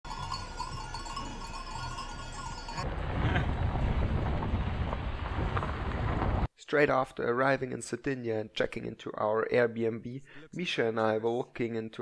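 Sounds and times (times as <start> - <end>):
sheep bells ringing: 0.0 - 2.9
steady low rumble: 2.8 - 6.5.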